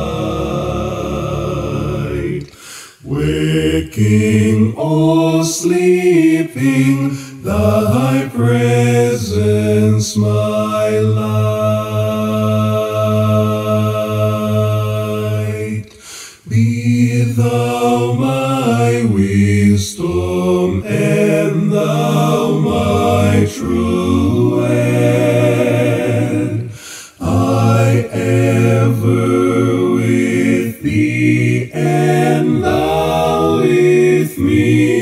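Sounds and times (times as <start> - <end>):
male vocal harmony singing hymn: 0.0 - 35.0.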